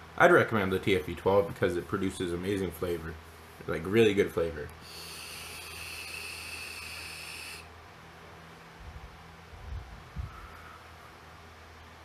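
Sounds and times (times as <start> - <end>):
vape airflow hiss: 4.8 - 7.7
soft puffs of breath: 10.1 - 11.2.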